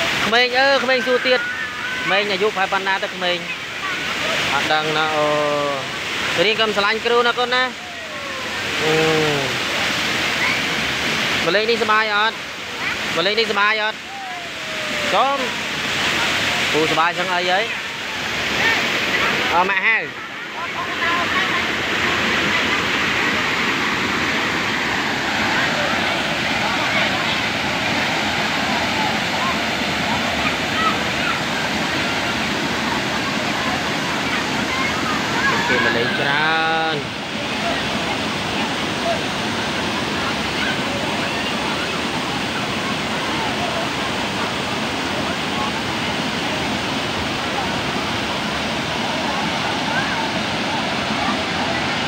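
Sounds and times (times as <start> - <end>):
river water flowing over rock: 0.0 - 52.0
person speaking: 7.7 - 9.6
voice calling: 7.8 - 9.6, 14.0 - 15.3
faint voices: 7.8 - 10.8, 14.0 - 16.7, 17.7 - 52.0.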